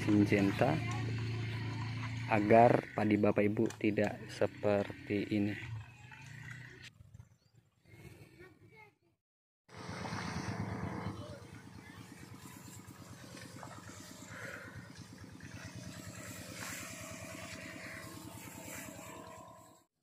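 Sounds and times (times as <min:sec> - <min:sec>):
motorized crop sprayer running: 0:00.0 - 0:06.9, 0:09.7 - 0:19.9.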